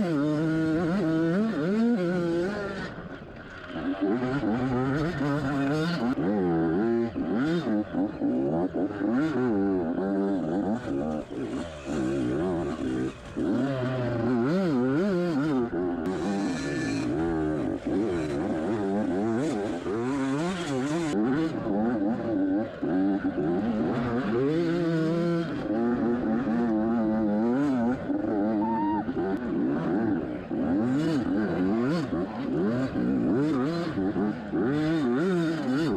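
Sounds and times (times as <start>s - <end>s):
dirt bike engine revving: 0.0s - 35.9s.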